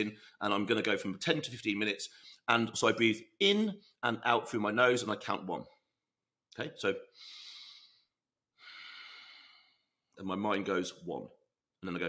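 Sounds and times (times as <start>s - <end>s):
man breathing through nose: 7.1s - 10.0s.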